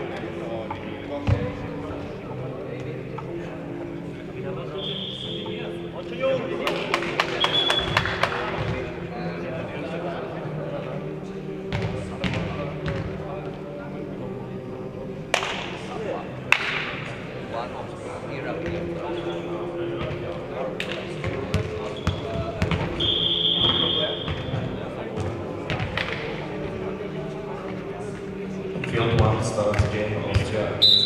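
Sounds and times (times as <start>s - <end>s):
voices in a hall: 0.0s - 31.0s.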